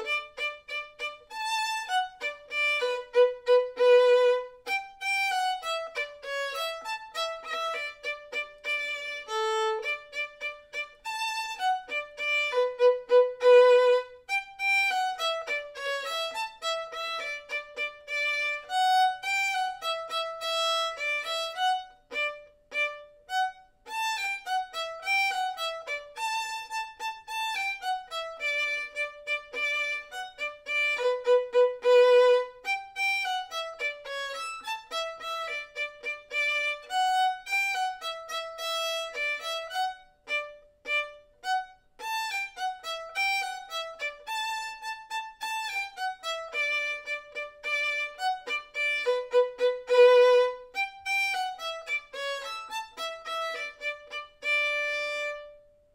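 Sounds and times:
solo violin march melody: 0:00.0 - 0:55.9.

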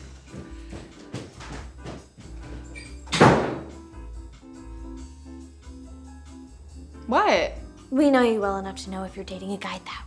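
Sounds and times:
background music: 0:00.0 - 0:10.0
door shutting heavily: 0:02.8 - 0:03.8.

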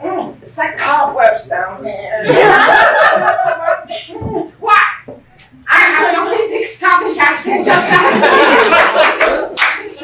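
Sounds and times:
small audience clapping: 0:08.3 - 0:10.0.

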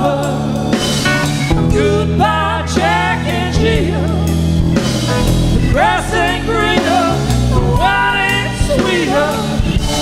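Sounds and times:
bass guitar: 0:00.0 - 0:10.0
drum kit: 0:00.0 - 0:10.0
electric guitars: 0:00.0 - 0:10.0
keyboards: 0:00.0 - 0:10.0.

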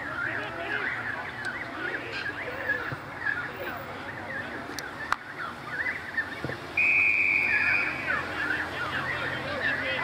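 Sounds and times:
whistle blast: 0:06.8 - 0:09.2.

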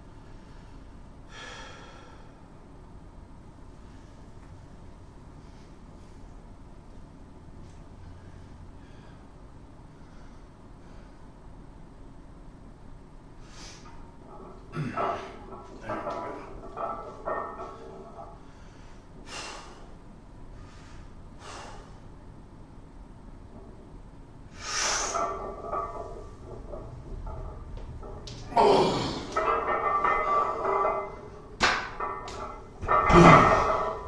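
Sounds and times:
man breathing forcefully: 0:18.4 - 0:20.0, 0:20.6 - 0:22.1.

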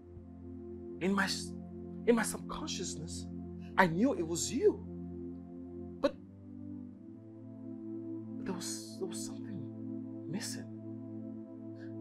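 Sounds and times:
film score with sustained chords: 0:00.0 - 0:12.0.

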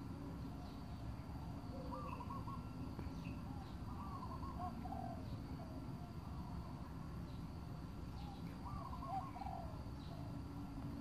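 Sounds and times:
bird warbling: 0:01.7 - 0:05.8, 0:08.2 - 0:10.3.

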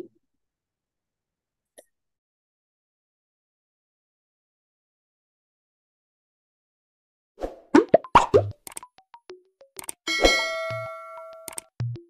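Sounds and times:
bright bell-like ding: 0:10.1 - 0:11.5.

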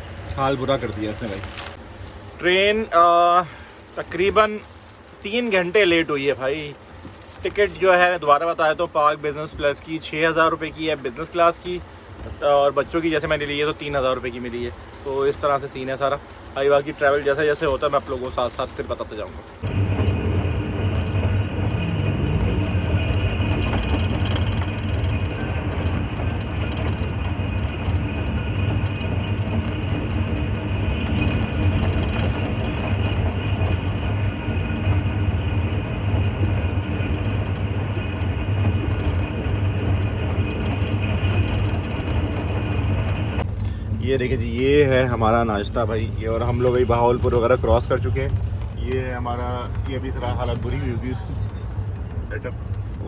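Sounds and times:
train carriage rumbling on rails: 0:00.0 - 0:53.0.

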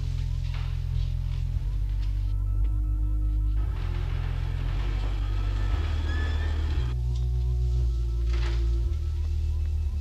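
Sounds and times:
deep steady rumble: 0:00.0 - 0:10.0.

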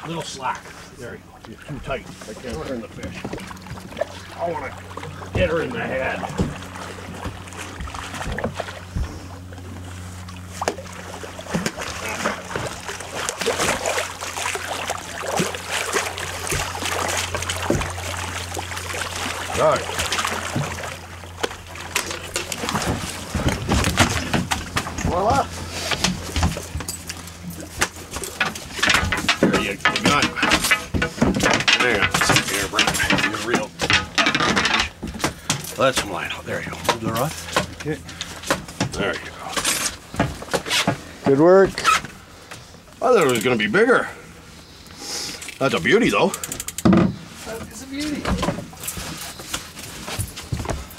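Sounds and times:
boat low hum: 0:00.0 - 0:50.9
fish thrashing and splashing: 0:02.6 - 0:41.2
fish knocking against hull: 0:05.2 - 0:09.6, 0:15.0 - 0:18.8, 0:25.9 - 0:41.1.

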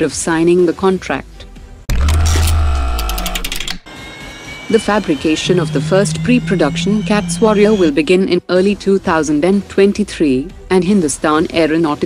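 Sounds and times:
mechanical clicks: 0:02.0 - 0:03.8.

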